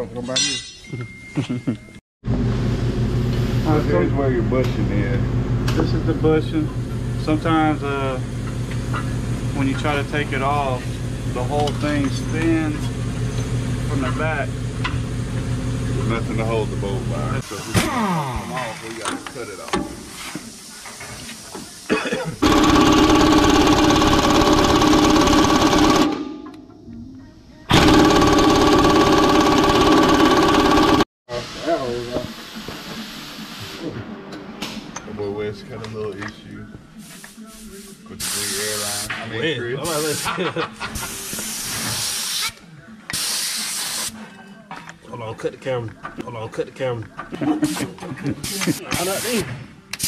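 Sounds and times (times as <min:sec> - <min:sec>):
pneumatic impact wrench hammering: 0:22.4 - 0:26.4, 0:27.7 - 0:31.0
compressed air hissing: 0:41.0 - 0:44.2.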